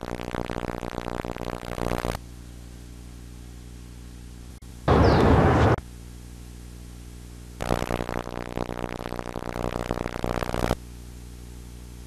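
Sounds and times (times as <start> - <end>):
buzzy distorted audio burst: 0.0 - 2.2, 4.9 - 5.8, 7.6 - 10.8
television electrical hum: 0.0 - 12.0.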